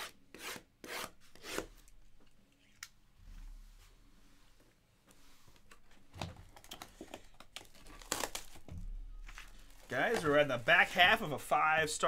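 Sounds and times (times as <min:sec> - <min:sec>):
plastic shrink wrap crinkling tearing: 0:06.6 - 0:08.7.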